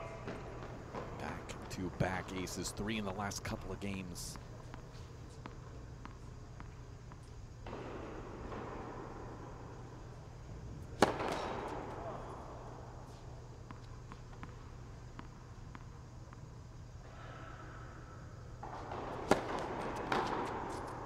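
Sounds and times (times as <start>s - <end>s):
tennis ball struck hard: 11.0s - 12.0s, 18.6s - 20.8s.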